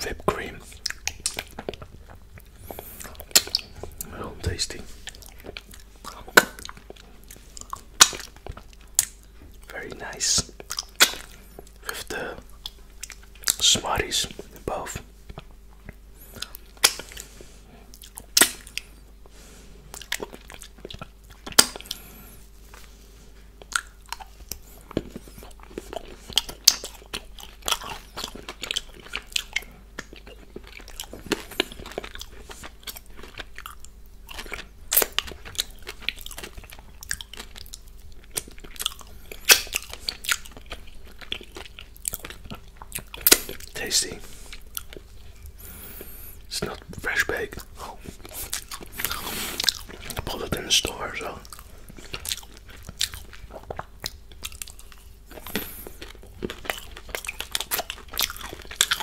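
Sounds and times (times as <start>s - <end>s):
close chewing with crunches: 0.0s - 59.0s
wet mouth clicks: 10.5s - 11.3s.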